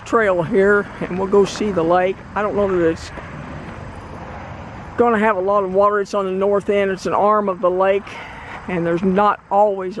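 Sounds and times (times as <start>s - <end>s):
outdoor rumble and hiss: 0.0s - 10.0s.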